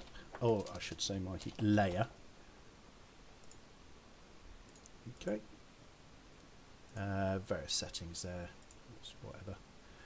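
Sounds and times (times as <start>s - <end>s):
faint computer mouse clicks: 3.4s - 3.6s, 4.7s - 5.0s.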